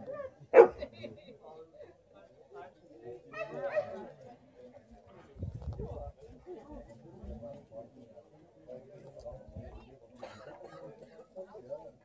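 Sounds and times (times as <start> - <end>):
dog barking: 0.1 - 0.8.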